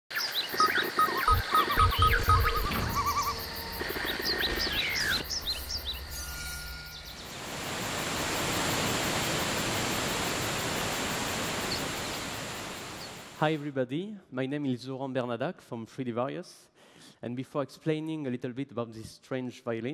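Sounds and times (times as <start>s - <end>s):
bird-like chirps: 0.1s - 7.4s
electronic music: 0.6s - 7.3s
steady rushing noise: 1.3s - 13.4s
deep bass hits: 1.4s - 3.7s.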